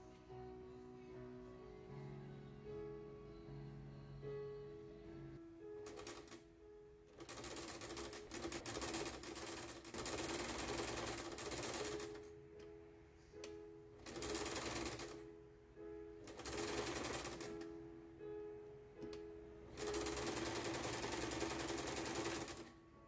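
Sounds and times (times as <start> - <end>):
sewing machine stitching fabric: 7.2 - 12.3, 14.0 - 15.2, 16.3 - 17.6, 19.7 - 22.7.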